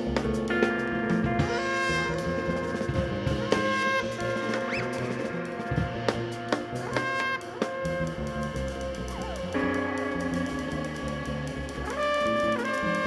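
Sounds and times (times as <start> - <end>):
drum hits: 0.0 - 13.0
trombone long notes: 0.0 - 13.0.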